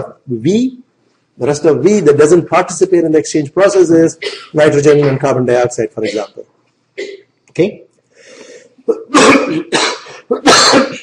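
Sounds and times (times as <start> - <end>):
man coughing: 4.2 - 5.2, 6.0 - 6.4, 7.0 - 7.3, 8.9 - 11.0
intake of breath: 8.1 - 8.8.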